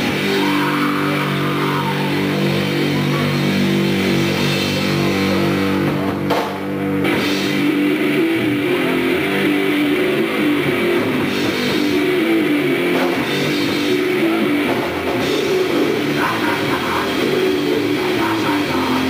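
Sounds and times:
distorted guitar: 0.0 - 19.0
drums: 0.0 - 19.0.

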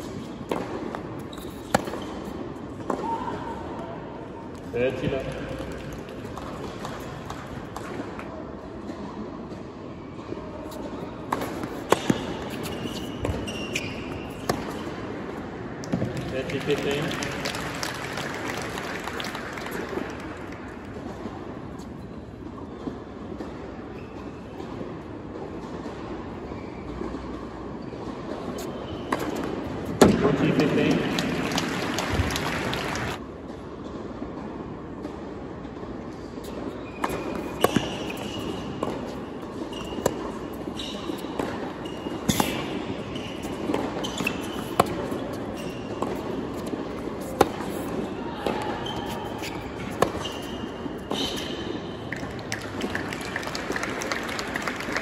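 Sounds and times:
sharp racket hits: 0.0 - 3.5, 10.7 - 15.0, 36.5 - 52.3
tennis ball bouncing on hard court: 0.0 - 3.8, 5.1 - 8.3, 10.2 - 17.0, 22.6 - 32.4, 35.8 - 52.9
audience applause: 16.5 - 20.4, 30.9 - 33.2, 52.5 - 55.0.

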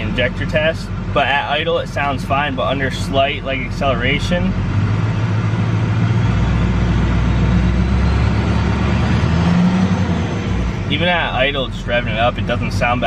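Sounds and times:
diesel engine running: 0.0 - 13.0.

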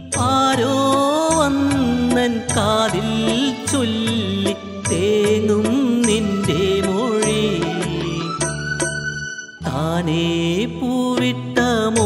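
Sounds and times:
man singing into microphone: 0.0 - 8.6, 9.6 - 12.0
instrumental accompaniment: 0.0 - 12.0.

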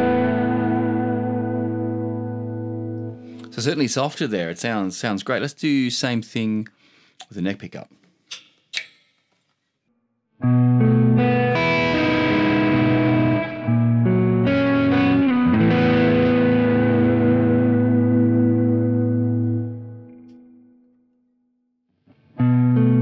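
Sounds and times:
electric guitar chords with reverb: 0.0 - 3.5, 10.4 - 20.8, 22.1 - 23.0.

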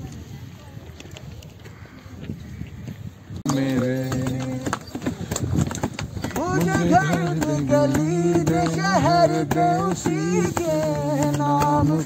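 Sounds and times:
man singing: 3.5 - 5.0, 6.3 - 12.0.

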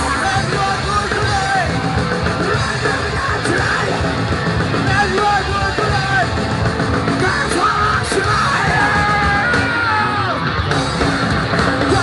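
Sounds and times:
distorted electric guitars: 0.0 - 12.0
drums: 0.0 - 12.0.

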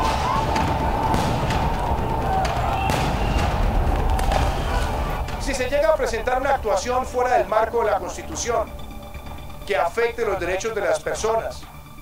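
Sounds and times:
loud outdoor crowd din: 0.0 - 5.5
sharp cracks: 0.0 - 7.4.

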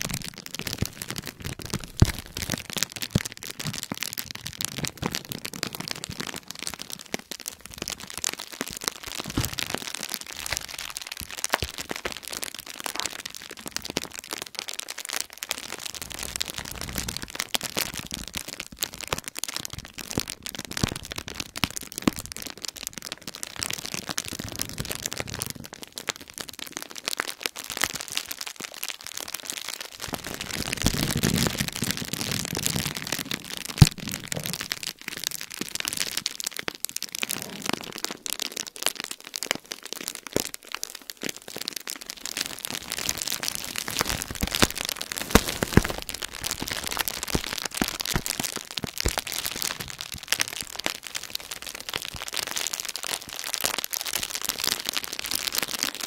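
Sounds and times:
sharp bubble wrap crack: 0.0 - 25.9, 29.2 - 56.0
bubble wrap crackling: 0.0 - 56.0.

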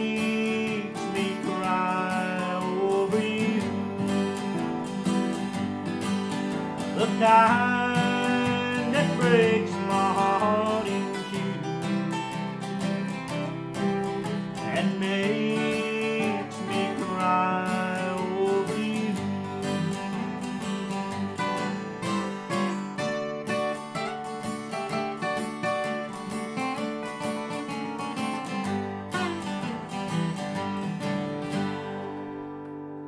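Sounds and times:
acoustic guitars playing country: 0.0 - 33.0.

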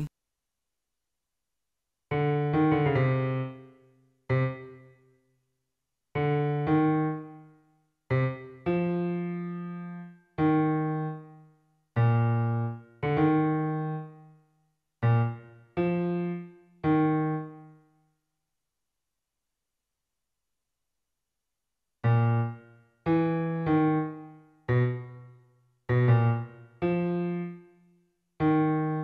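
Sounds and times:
sampled piano notes: 4.3 - 4.9, 8.1 - 14.3, 15.0 - 17.8, 22.0 - 25.3, 25.9 - 27.8, 28.4 - 29.0.

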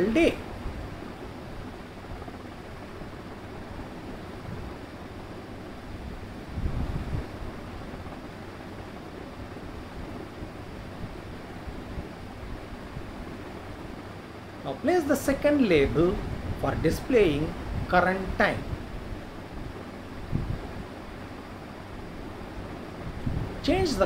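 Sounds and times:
background hiss: 0.0 - 24.0.

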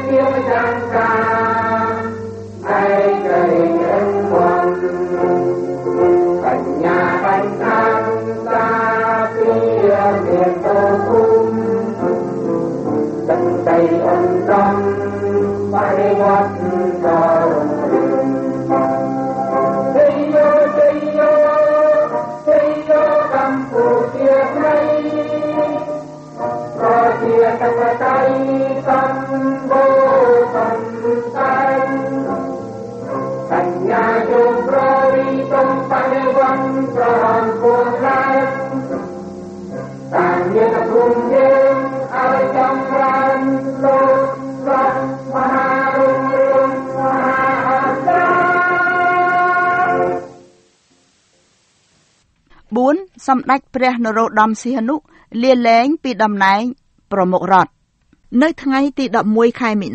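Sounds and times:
choir singing held notes: 0.0 - 50.6
musical accompaniment: 0.0 - 51.1.

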